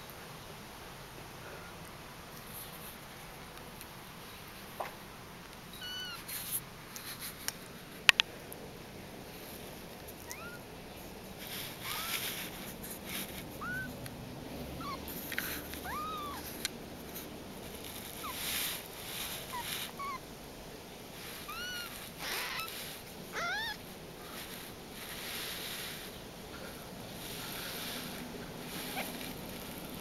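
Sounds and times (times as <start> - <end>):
kittens mewing: 5.8 - 6.3, 10.2 - 10.7, 11.7 - 12.4, 13.4 - 14.0, 14.6 - 16.7, 19.4 - 20.3, 21.3 - 24.4, 28.7 - 29.7.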